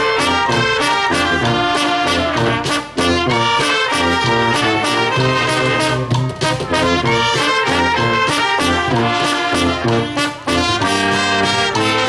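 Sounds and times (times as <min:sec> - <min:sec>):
brass band playing: 0:00.0 - 0:12.0
steady bass drum beat: 0:00.4 - 0:12.0.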